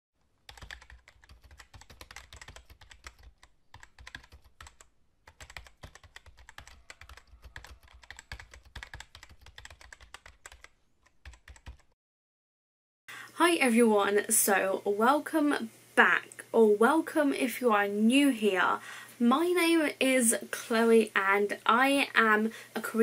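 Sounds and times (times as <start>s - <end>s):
computer keyboard typing: 0.4s - 12.0s.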